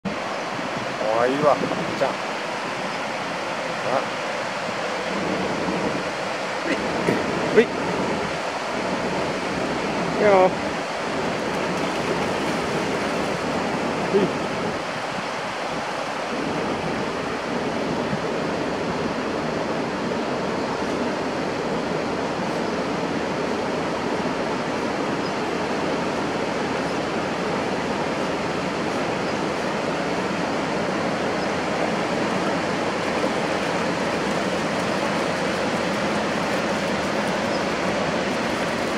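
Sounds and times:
river water rushing over rapids: 0:00.1 - 0:38.9.

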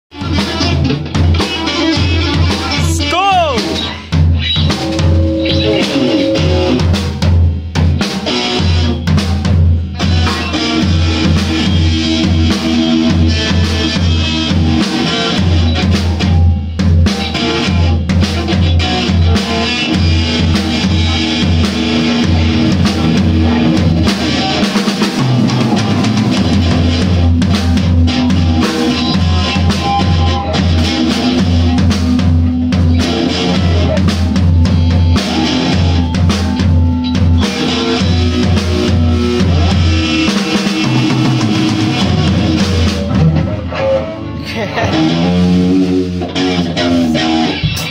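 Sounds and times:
drum kit: 0:00.1 - 0:47.9
electric guitars: 0:00.1 - 0:47.9
low bass notes: 0:18.8 - 0:47.5.

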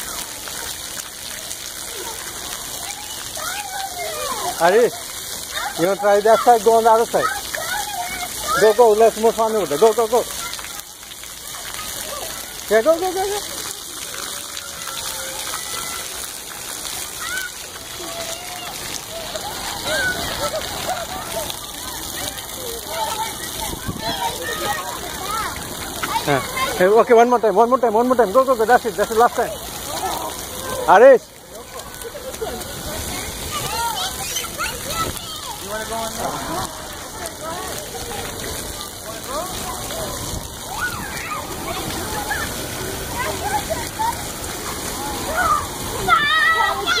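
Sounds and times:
children's voices: 0:00.0 - 0:47.0
water jets spraying: 0:00.0 - 0:47.0
child's high shout: 0:02.8 - 0:04.6, 0:05.4 - 0:09.0, 0:14.3 - 0:16.2, 0:17.1 - 0:22.0, 0:33.5 - 0:35.6, 0:40.6 - 0:44.2, 0:44.9 - 0:47.0.

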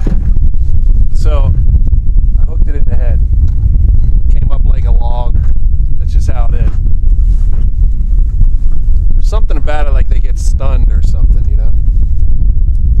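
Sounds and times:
wind buffeting microphone: 0:00.0 - 0:13.0
man's voice: 0:09.2 - 0:11.8.

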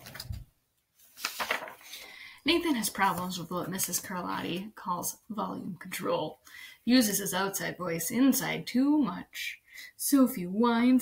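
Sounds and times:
book pages rustling: 0:00.0 - 0:04.6.

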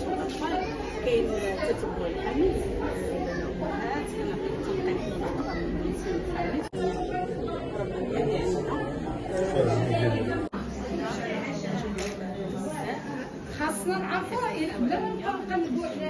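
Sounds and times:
indistinct chatter of people: 0:00.0 - 0:16.0.

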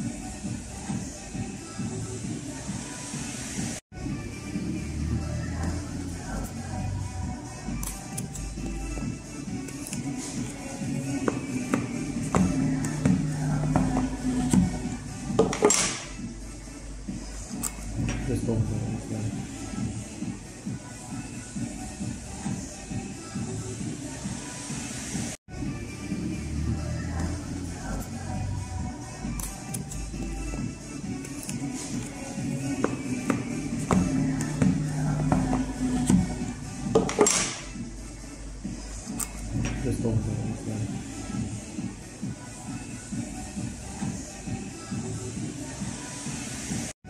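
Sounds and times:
background music: 0:00.0 - 0:47.0
background song: 0:00.0 - 0:47.0.

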